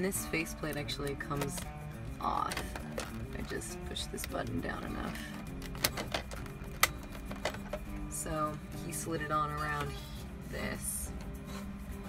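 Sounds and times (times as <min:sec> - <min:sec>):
plastic faceplate clicks: 0:05.6 - 0:07.8.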